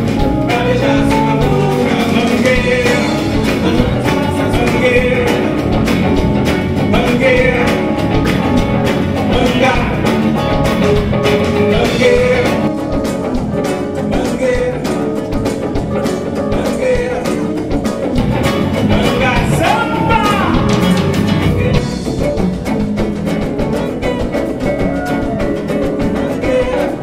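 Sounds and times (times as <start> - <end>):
acoustic guitar: 0.0 - 27.0
bass guitar: 0.0 - 27.0
drums: 0.0 - 27.0
electric guitar: 0.0 - 27.0
keyboard: 0.0 - 27.0.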